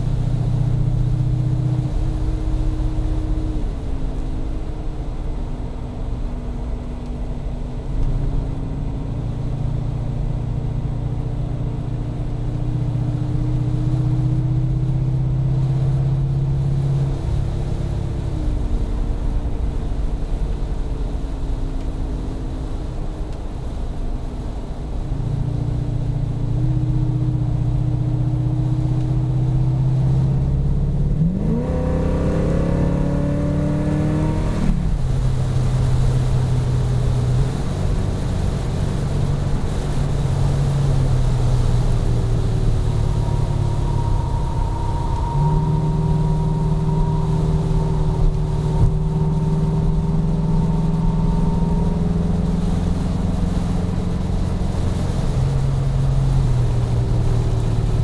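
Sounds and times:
car engine throbbing and revving: 0:00.0 - 0:58.0.

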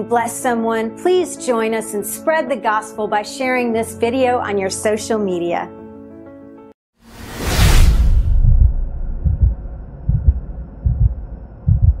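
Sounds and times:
whoosh: 0:07.0 - 0:11.0
deep heartbeat-like thumps: 0:07.7 - 0:12.0.

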